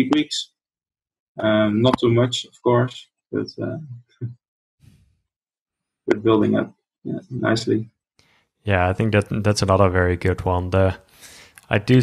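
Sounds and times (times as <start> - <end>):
man saying uh: 0.0 - 0.4, 1.4 - 4.0, 6.1 - 7.8, 8.7 - 11.0, 11.7 - 12.0
sighing breath: 11.1 - 11.7.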